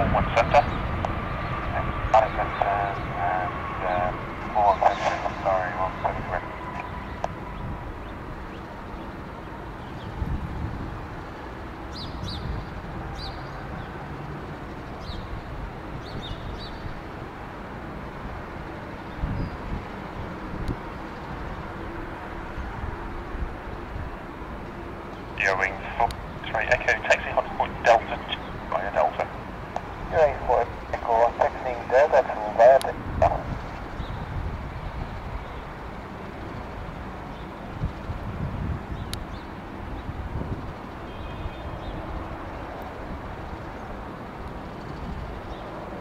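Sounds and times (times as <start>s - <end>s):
jet engine roar with whine: 0.0s - 46.0s.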